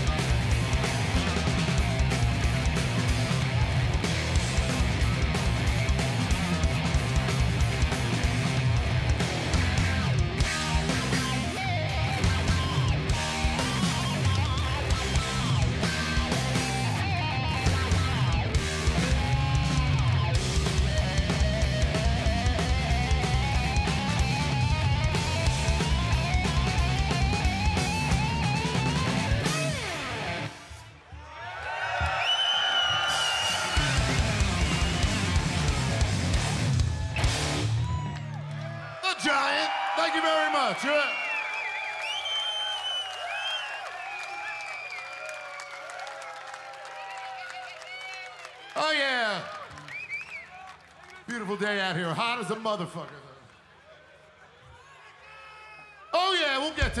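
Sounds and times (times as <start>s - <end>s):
bass: 0.0s - 30.5s, 33.2s - 39.4s, 56.7s - 57.0s
distorted electric guitar: 0.0s - 30.7s, 33.7s - 38.0s
drums: 0.0s - 50.5s, 56.2s - 57.0s
crowd cheering and whistling: 21.5s - 51.9s, 53.4s - 57.0s.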